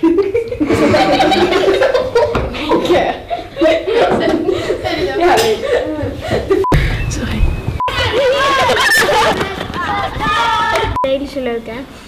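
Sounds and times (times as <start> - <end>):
children laughing and giggling: 0.0 - 6.7, 7.9 - 11.0.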